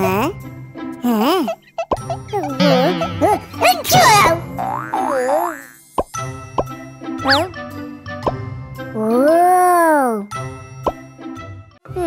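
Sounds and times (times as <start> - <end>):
playful background music: 0.0 - 12.0
squeaky gibberish cartoon voices: 1.0 - 5.7, 7.2 - 7.5.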